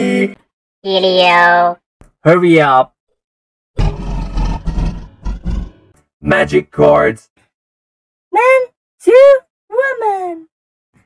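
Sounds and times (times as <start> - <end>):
deep gravelly monster roar voice: 3.8 - 6.0.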